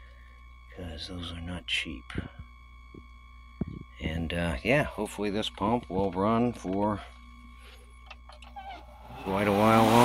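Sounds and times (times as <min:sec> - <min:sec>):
pool pump humming: 0:04.8 - 0:10.0.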